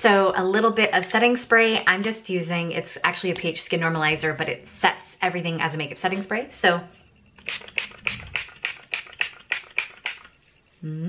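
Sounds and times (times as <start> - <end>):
pump spray bottle hissing: 7.4 - 10.4.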